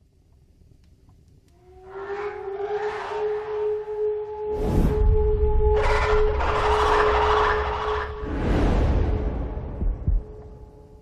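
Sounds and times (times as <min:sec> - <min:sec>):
low rumble drone: 0:03.3 - 0:11.0.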